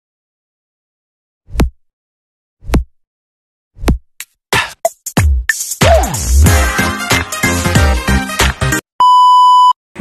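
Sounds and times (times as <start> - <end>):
electronic music with beat: 4.2 - 8.8.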